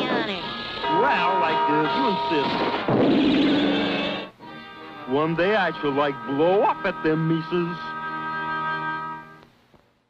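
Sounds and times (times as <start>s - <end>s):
held brass chord: 0.6s - 2.8s, 3.5s - 9.4s.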